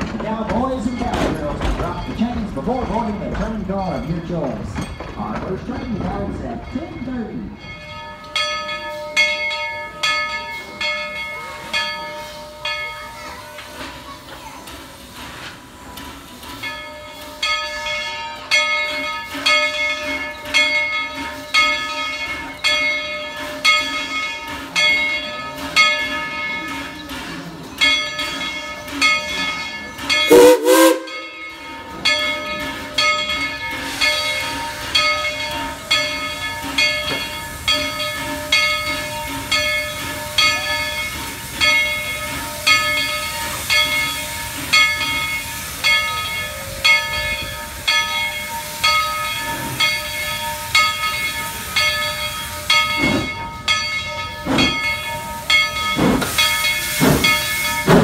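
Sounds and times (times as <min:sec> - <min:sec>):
locomotive bell ringing: 0:00.0 - 0:58.0
steam whistle blast: 0:30.3 - 0:31.2
steam venting hiss: 0:54.9 - 0:58.0.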